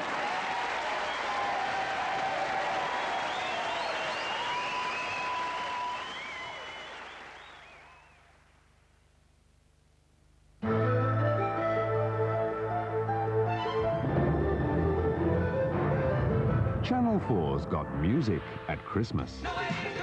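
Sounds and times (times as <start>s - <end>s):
audience applause: 0.0s - 8.6s.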